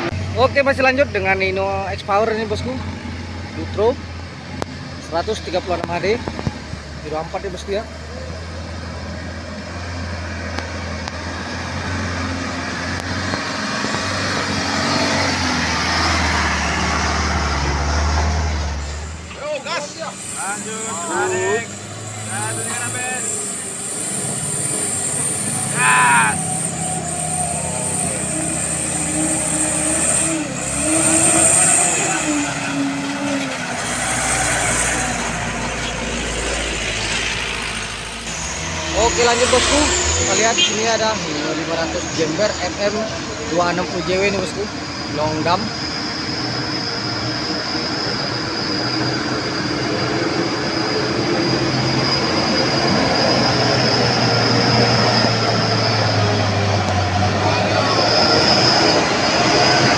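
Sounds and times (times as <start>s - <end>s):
diesel truck engines rumbling: 0.0s - 59.9s
people's voices: 19.3s - 46.3s, 52.4s - 59.9s.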